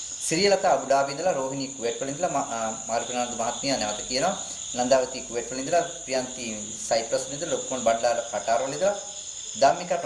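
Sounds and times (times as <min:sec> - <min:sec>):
crickets chirping: 0:00.0 - 0:10.0
man speaking: 0:00.2 - 0:10.0.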